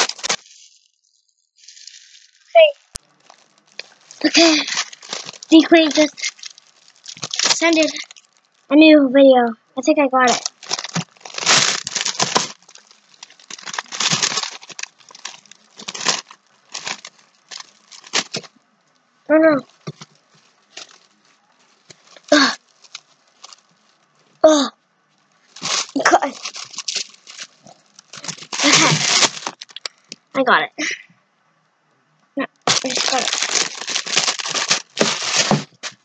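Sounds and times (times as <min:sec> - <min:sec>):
plastic packaging rustling: 0:00.0 - 0:08.7, 0:10.2 - 0:18.6, 0:19.6 - 0:24.3, 0:25.1 - 0:30.2, 0:32.5 - 0:36.0.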